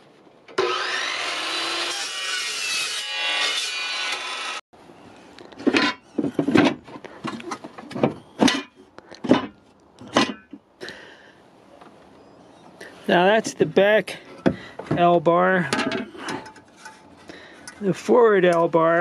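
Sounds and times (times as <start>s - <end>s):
chop saw cutting metal: 0.6s - 4.6s.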